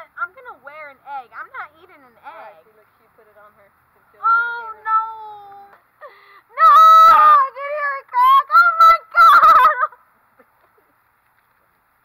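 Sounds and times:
woman squealing and shrieking: 6.5s - 7.6s, 8.2s - 10.0s.

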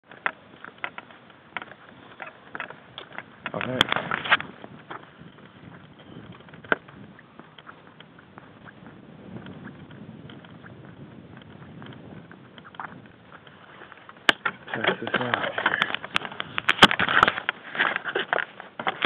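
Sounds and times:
microphone handling rustling: 0.1s - 19.0s.

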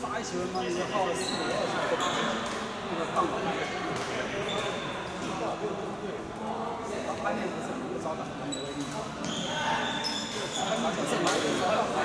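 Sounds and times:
murmur of voices: 0.0s - 12.0s
shoes squeaking on court floor: 0.5s - 2.6s, 4.4s - 5.3s, 8.4s - 11.6s.

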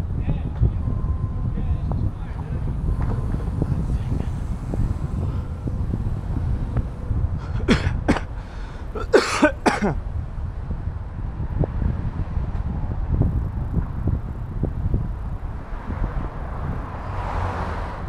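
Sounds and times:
street ambience: 0.0s - 18.0s
wind rumble on microphone: 0.0s - 18.0s
vehicle passing: 0.8s - 18.0s
person coughing: 7.5s - 10.0s.

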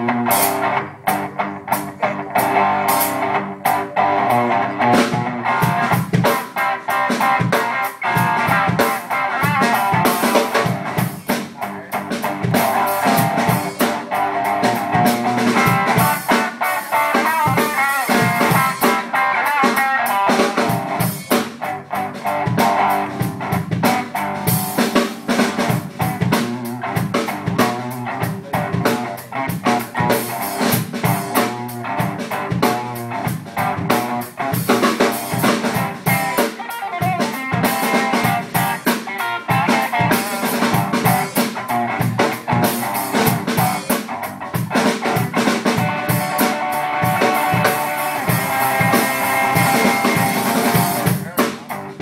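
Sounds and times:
drum kit steady beat: 0.0s - 52.0s.

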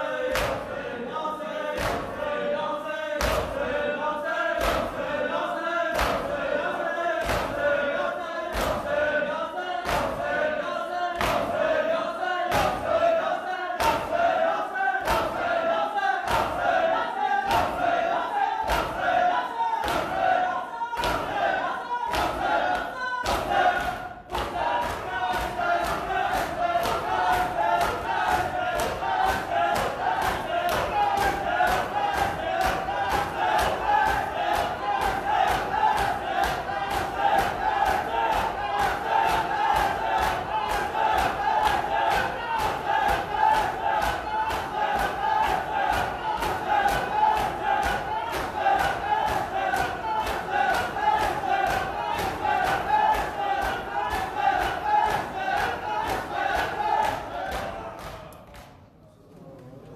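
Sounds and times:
men chanting: 0.0s - 58.4s
hands beating chests: 22.1s - 58.2s.

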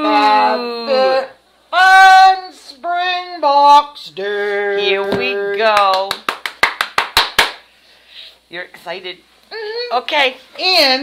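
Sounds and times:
excited hand clapping: 5.4s - 7.7s.

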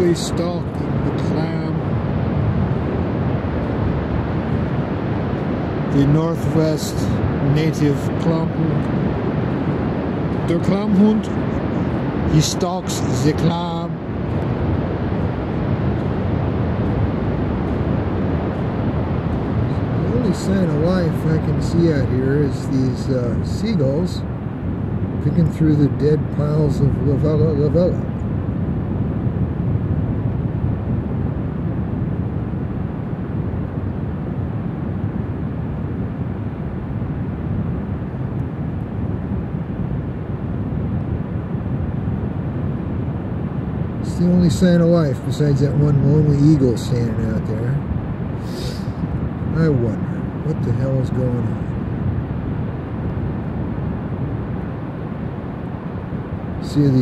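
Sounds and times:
distant surf: 0.0s - 57.0s
wind blowing across microphone: 0.0s - 57.0s.

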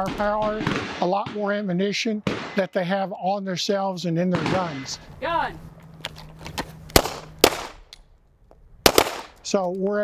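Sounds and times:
loud pistol shots: 0.0s - 2.7s, 4.3s - 5.0s, 7.0s - 7.8s, 8.8s - 9.4s.

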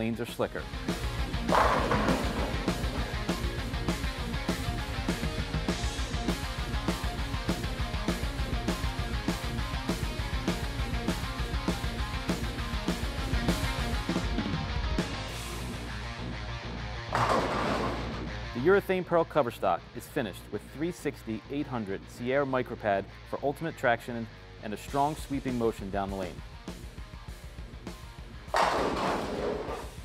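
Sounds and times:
background music: 0.0s - 30.0s
bowling pins crashing: 1.4s - 3.5s, 17.1s - 18.2s, 28.5s - 30.0s.

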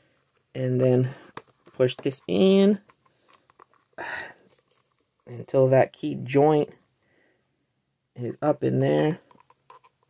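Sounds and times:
doll joint clicking and rubbing: 0.3s - 5.3s, 9.2s - 10.0s.

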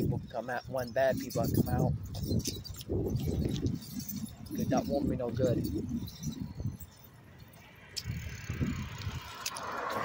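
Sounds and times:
bicycle clicks and rattles: 0.7s - 10.0s.

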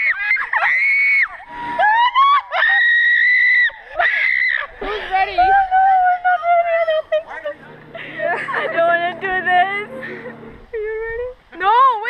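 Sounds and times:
girls screaming: 0.0s - 6.3s.

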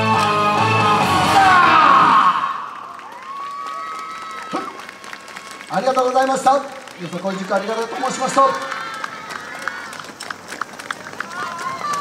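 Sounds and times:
short sharp claps: 2.8s - 12.0s
distant voices: 3.7s - 12.0s.

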